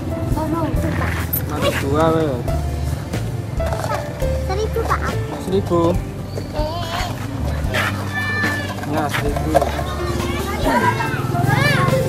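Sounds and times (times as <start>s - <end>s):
children's voices: 3.7s - 5.4s, 6.4s - 12.0s.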